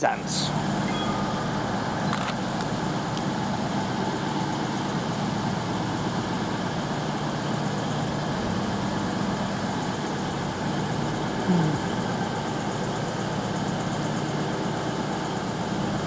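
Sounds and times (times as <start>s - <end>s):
train diesel engines humming: 0.0s - 16.0s.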